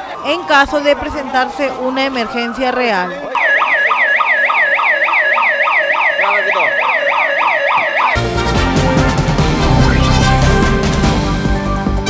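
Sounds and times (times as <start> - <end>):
siren in fast yelp mode: 0.1 - 8.2.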